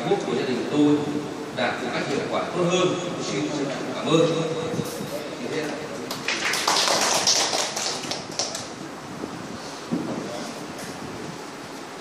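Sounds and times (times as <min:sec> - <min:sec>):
audience applauding: 0:06.1 - 0:08.8.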